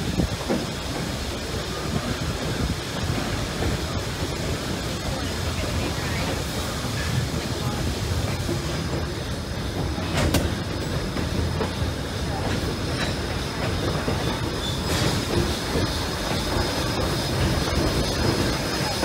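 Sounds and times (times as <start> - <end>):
train wheels rumbling on rails: 0.0 - 19.0.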